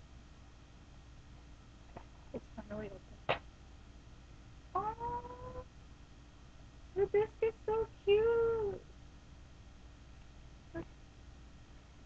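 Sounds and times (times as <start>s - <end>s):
girl humming: 4.8s - 5.7s.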